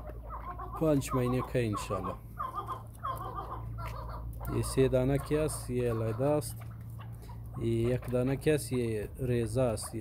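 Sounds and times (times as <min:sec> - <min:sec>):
partridges calling: 0:00.0 - 0:10.0.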